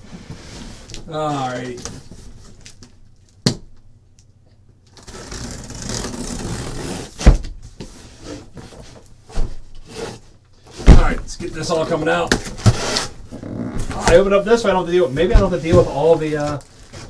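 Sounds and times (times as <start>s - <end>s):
cardboard scraping rustle: 12.5s - 17.0s.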